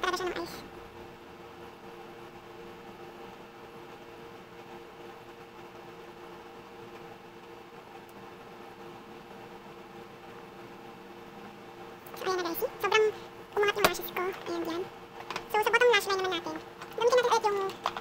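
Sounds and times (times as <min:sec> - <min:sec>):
steady mechanical hum: 0:00.0 - 0:18.0.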